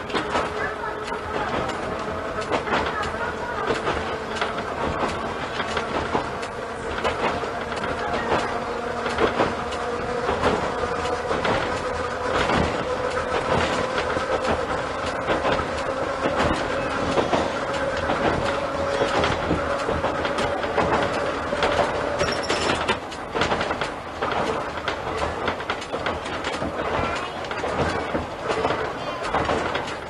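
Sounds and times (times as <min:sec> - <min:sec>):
train running rumble: 0:00.0 - 0:30.0
wheels clicking over rail joints: 0:00.0 - 0:30.0.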